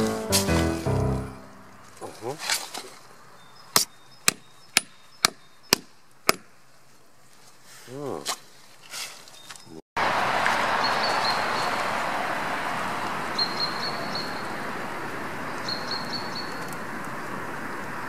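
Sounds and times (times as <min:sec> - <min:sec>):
steady outdoor hiss: 0:00.0 - 0:09.3, 0:10.0 - 0:18.0.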